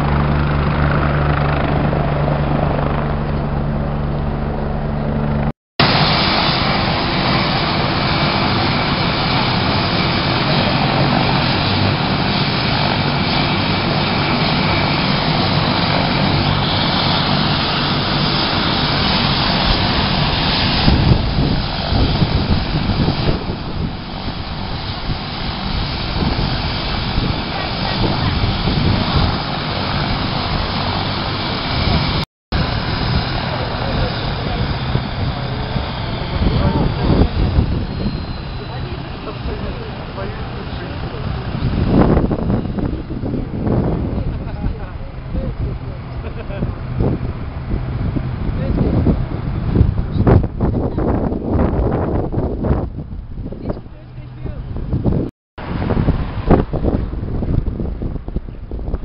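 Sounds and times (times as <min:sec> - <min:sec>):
helicopter turbine and rotor: 0:00.0 - 0:59.0.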